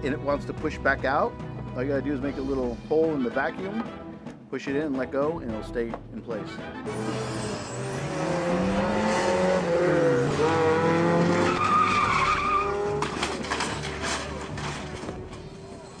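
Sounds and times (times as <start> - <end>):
sports car engine revving: 6.9 - 13.3
tyres squealing: 9.9 - 15.4.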